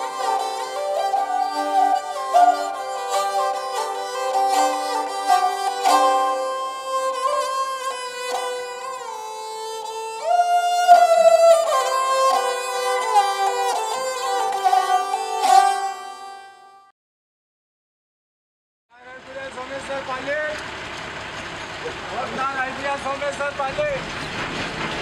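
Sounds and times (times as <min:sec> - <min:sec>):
slow string music: 0:00.0 - 0:16.9.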